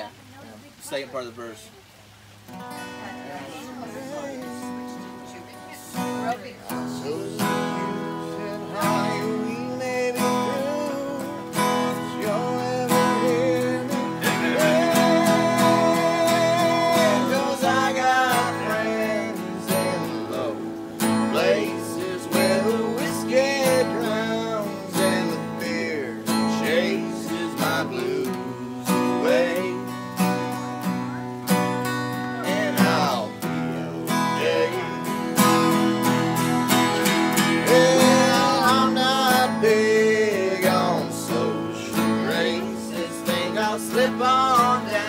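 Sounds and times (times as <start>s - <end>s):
acoustic guitars strumming: 0.0s - 45.0s.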